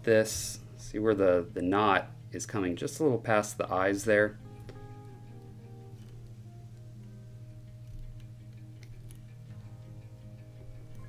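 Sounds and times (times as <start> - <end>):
soft plucked guitar music: 0.0 - 11.0
steady low hum: 0.0 - 11.0.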